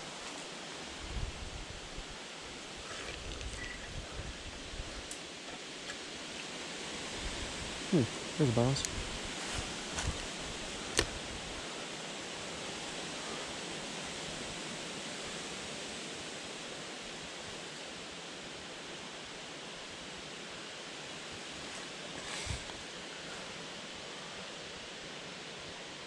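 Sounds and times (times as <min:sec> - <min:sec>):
light clicks: 0:10.9 - 0:11.2
steady rushing noise: 0:21.4 - 0:25.2.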